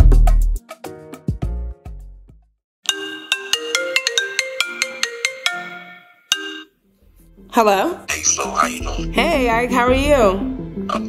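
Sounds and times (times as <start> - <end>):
phone ringtone: 2.9 - 6.8.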